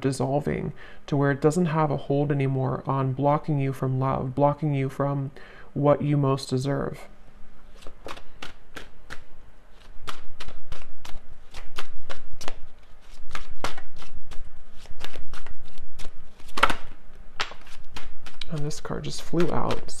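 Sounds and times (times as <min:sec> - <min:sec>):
cards being shuffled: 0:07.6 - 0:20.0.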